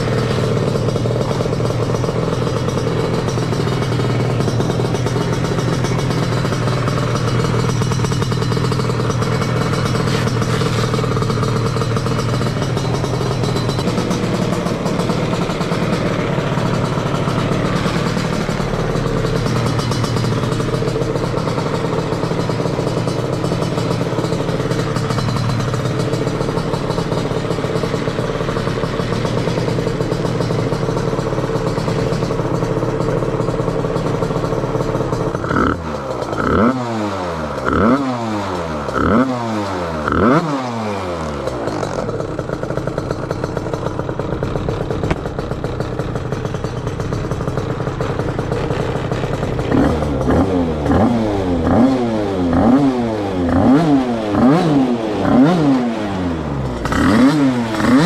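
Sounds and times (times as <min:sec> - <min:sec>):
scooter engine idling: 0:00.0 - 0:58.0.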